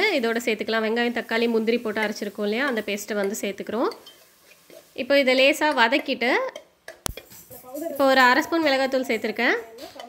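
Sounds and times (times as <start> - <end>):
faint stirring scrapes: 1.2 - 10.0.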